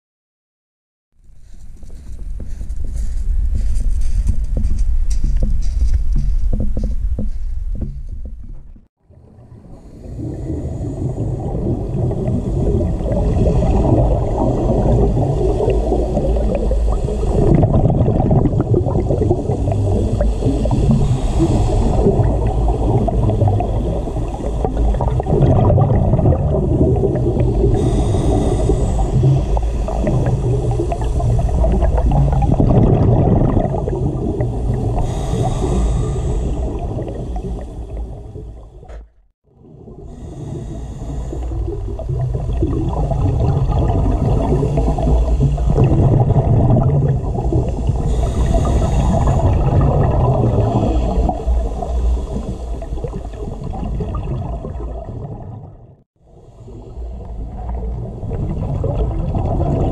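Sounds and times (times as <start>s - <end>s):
muffled underwater rumble: 1.7s - 59.9s.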